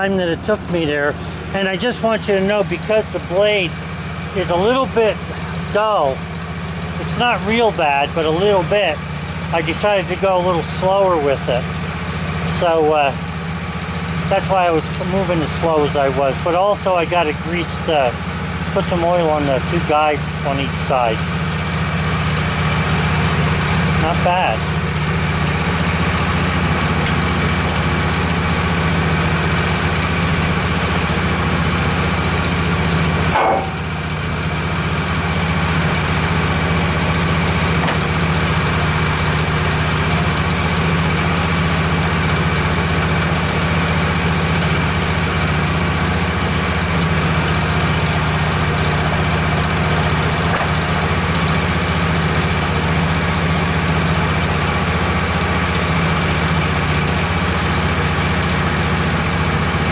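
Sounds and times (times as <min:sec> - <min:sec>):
sawmill engine idling: 0:00.0 - 0:59.9.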